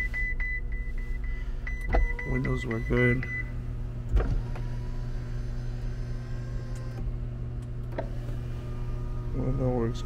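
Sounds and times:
power window motor running: 1.0s - 10.0s.

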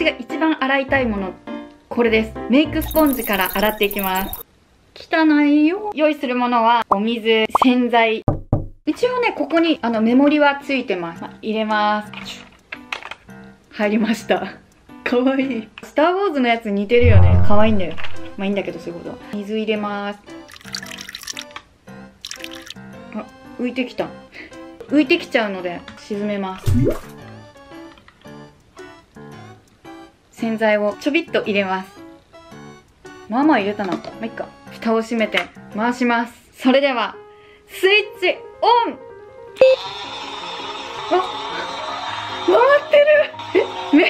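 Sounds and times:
background music: 0.0s - 4.4s, 9.0s - 44.0s
water pouring into plastic tub: 20.4s - 21.6s, 22.2s - 22.8s.

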